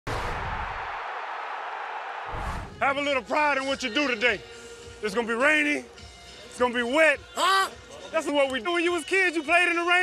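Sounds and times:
sudden hit: 0.1s - 0.9s.

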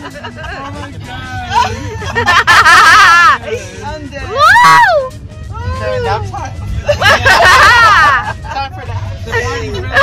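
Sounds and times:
car cabin rumble: 0.0s - 10.0s
women's excited voices: 4.3s - 6.0s.

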